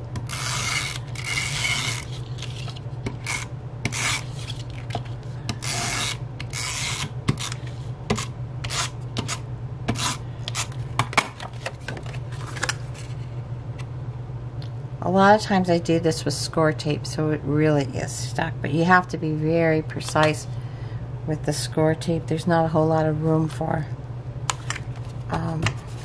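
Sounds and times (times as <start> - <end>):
tape runner rasping on card: 0.2 - 10.8.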